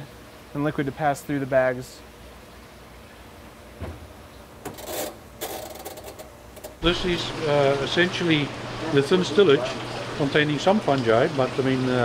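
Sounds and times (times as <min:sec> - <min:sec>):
steady low hum: 0:00.0 - 0:11.6.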